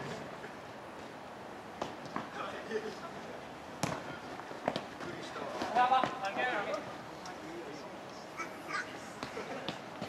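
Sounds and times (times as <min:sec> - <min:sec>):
ball being kicked: 0:03.8 - 0:04.1.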